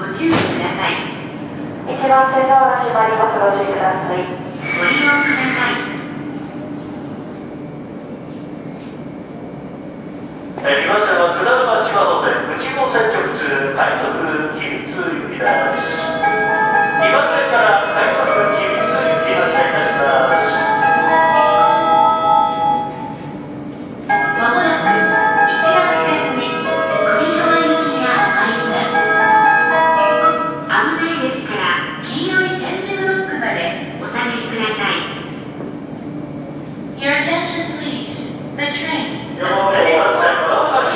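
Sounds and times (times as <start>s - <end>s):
electric train humming: 0.8s - 40.9s
chime melody over loudspeakers: 15.4s - 22.9s, 24.1s - 30.6s.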